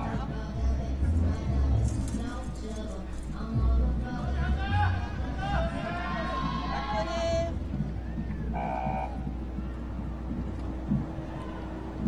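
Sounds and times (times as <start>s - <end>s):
constant low hum: 0.0s - 12.0s
music: 0.0s - 12.0s.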